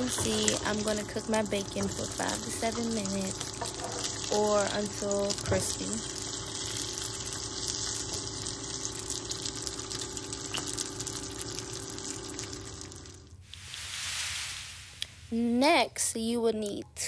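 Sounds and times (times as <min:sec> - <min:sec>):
bacon sizzling in a frying pan: 0:00.0 - 0:14.8.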